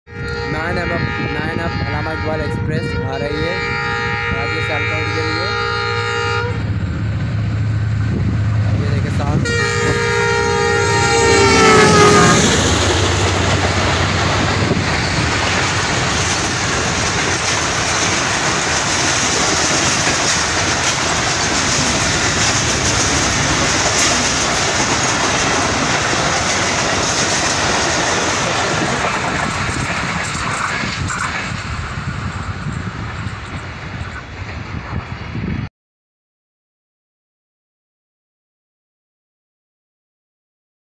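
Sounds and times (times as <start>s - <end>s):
train horn blasts: 0.1s - 6.7s, 9.2s - 14.0s
train wheels on rails: 6.4s - 35.6s.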